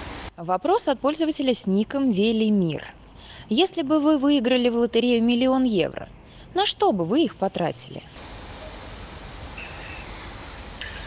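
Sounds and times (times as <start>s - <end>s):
steady hiss: 0.0s - 0.3s, 8.2s - 11.0s.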